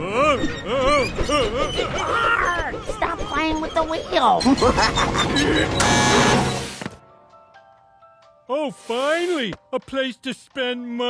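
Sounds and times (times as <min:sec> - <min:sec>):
music: 0:02.1 - 0:11.0.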